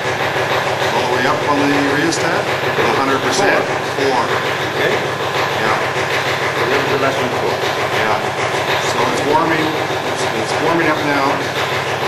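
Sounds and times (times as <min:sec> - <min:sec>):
vacuum pumps running: 0:00.0 - 0:12.0.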